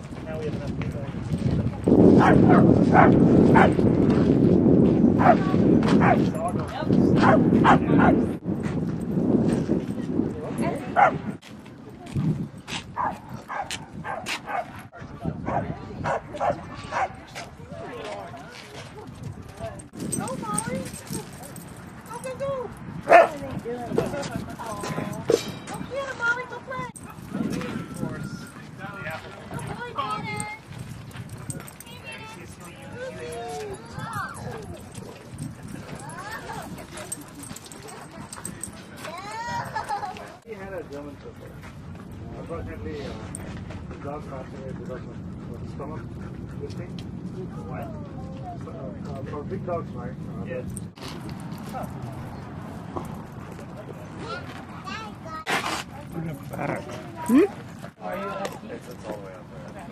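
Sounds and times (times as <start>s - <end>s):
dogs barking and yipping: 2.1s - 3.8s, 5.2s - 6.4s, 7.1s - 8.3s, 10.9s - 11.4s, 12.7s - 17.6s, 23.0s - 23.4s
low background murmur: 9.6s - 59.9s.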